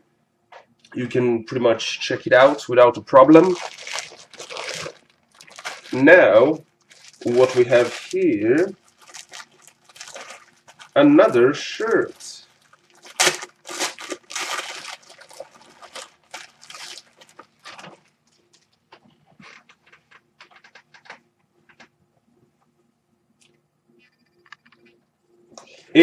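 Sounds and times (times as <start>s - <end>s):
plastic packaging crinkling: 2.2s - 21.2s.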